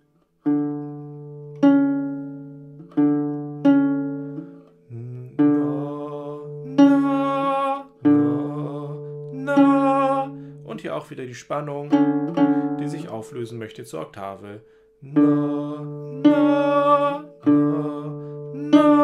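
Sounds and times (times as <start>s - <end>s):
classical guitar notes plucked: 0.0s - 13.8s, 14.6s - 19.0s.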